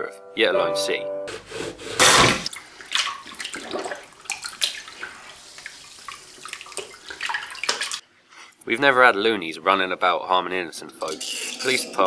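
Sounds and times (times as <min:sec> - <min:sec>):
tap water splashing into sink: 0:02.4 - 0:08.0.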